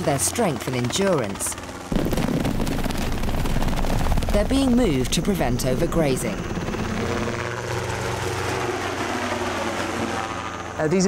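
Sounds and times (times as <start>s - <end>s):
helicopter rotor chopping: 0.0s - 11.0s.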